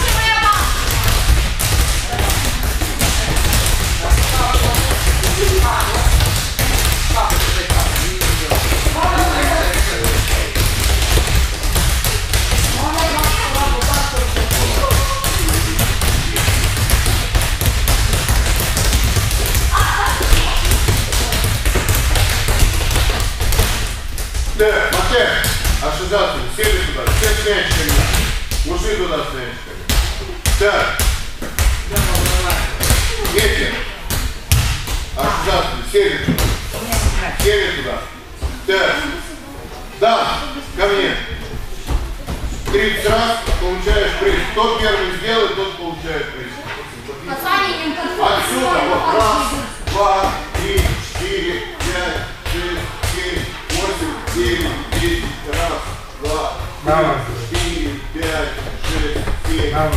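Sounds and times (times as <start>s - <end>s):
balls bouncing on mats: 0.0s - 39.1s, 41.0s - 45.0s, 49.0s - 59.9s.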